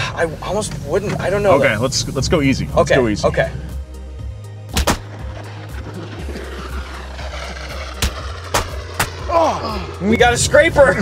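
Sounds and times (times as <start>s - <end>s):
background music with bass line: 2.1s - 11.0s
plastic cone scraping under car: 5.0s - 11.0s.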